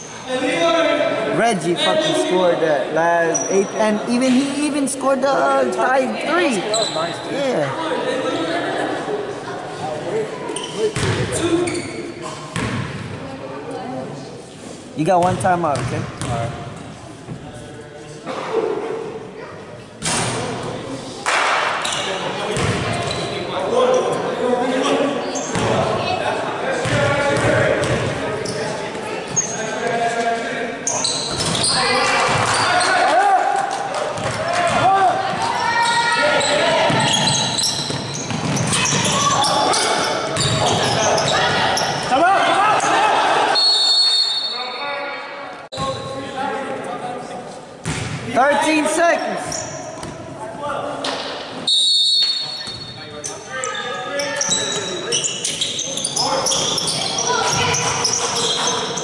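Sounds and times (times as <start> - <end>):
players and spectators shouting: 31.6 - 44.9, 55.8 - 59.0
referee's whistle blasts: 43.6 - 44.8, 51.7 - 52.8.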